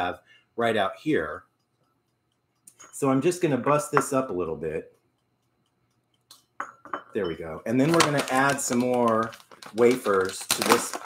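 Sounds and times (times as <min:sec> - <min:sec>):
chocolate pieces clinking into glass bowl: 0:07.7 - 0:11.0.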